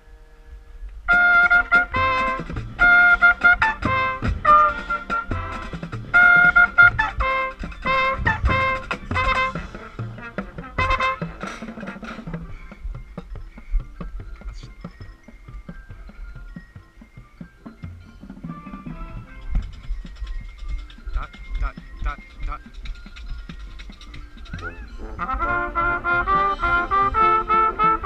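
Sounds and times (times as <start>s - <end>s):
trumpet: 0.0s - 12.6s, 18.4s - 19.8s, 24.6s - 28.0s
marching band brass playing: 1.1s - 12.7s, 18.3s - 19.8s, 24.6s - 28.0s.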